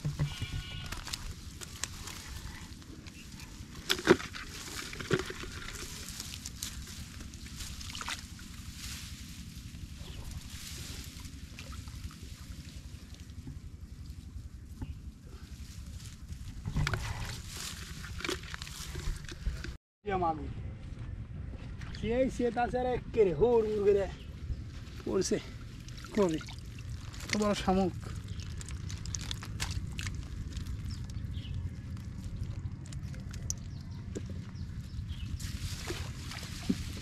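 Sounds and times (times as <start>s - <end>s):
steady low rumble: 0.0s - 37.0s
hands rustling through grass: 0.7s - 19.7s, 34.8s - 37.0s
water splashing: 25.8s - 27.6s.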